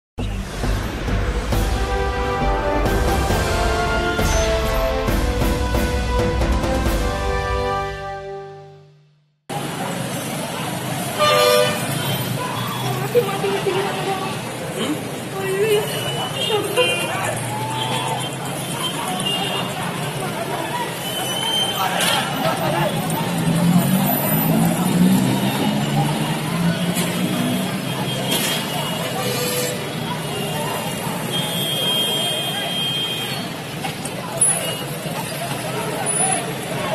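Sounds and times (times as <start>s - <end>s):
bus passing: 0.2s - 8.9s, 9.5s - 36.9s
busy road traffic: 0.2s - 36.9s
cars passing: 9.5s - 31.3s
motorbikes passing: 9.5s - 31.3s, 33.4s - 36.9s
people's voices: 9.5s - 36.9s
vehicle horn toot: 11.2s - 12.0s.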